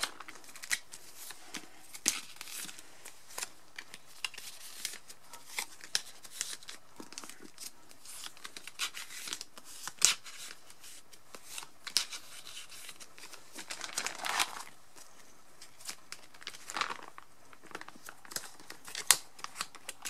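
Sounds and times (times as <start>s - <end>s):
cards rustling against plastic sleeves: 0.0s - 20.0s.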